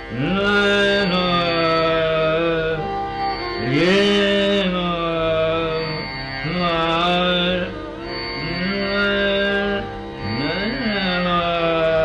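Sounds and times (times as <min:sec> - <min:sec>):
man singing long held notes: 0:00.0 - 0:12.0
steady drone: 0:00.0 - 0:12.0.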